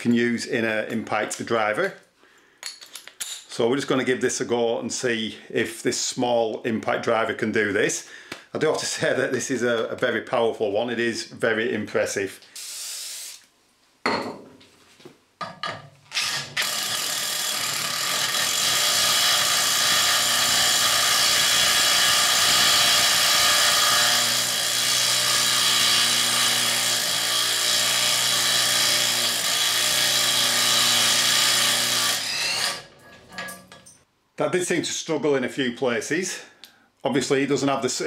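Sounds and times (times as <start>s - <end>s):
impact driver cutting steel: 16.1s - 33.6s.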